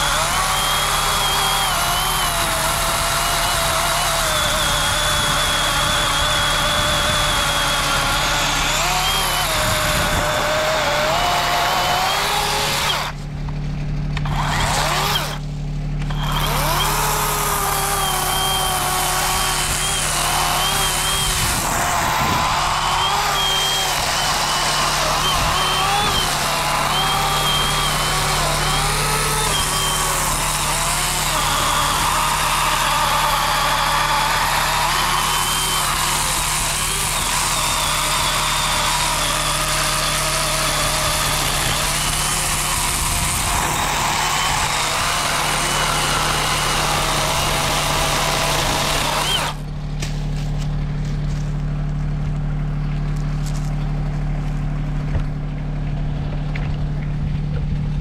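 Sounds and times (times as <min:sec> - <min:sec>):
electric chainsaw cutting wood: 0:00.0 - 0:13.3, 0:14.2 - 0:51.4
tractor idling hum: 0:12.3 - 0:58.0.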